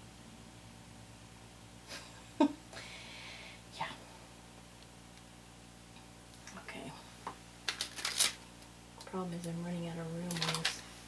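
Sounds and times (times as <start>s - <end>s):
paper rustling: 7.6s - 8.4s, 10.2s - 11.0s.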